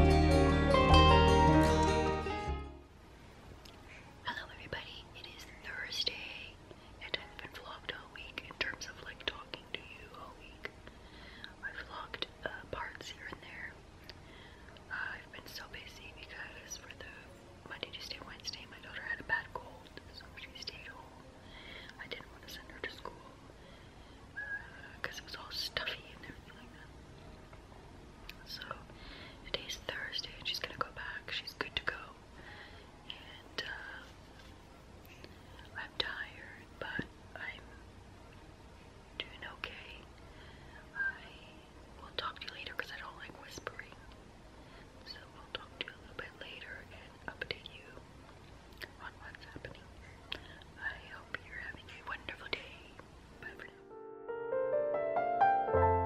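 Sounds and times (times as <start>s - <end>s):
woman whispering: 4.1s - 10.8s, 11.6s - 13.8s, 14.9s - 21.2s, 21.9s - 23.4s, 24.4s - 26.9s, 28.4s - 32.2s, 33.0s - 34.2s, 35.5s - 37.8s, 39.2s - 40.1s, 40.9s - 44.1s, 45.0s - 48.0s, 48.8s - 53.8s.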